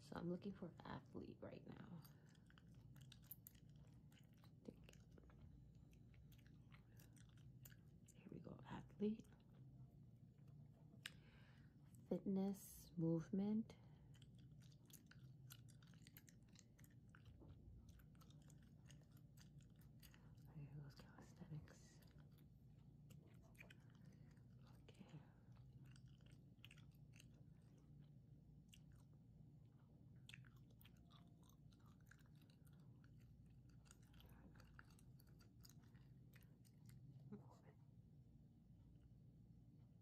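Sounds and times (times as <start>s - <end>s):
gum chewing: 1.7s - 8.4s, 9.2s - 12.1s, 13.9s - 37.4s.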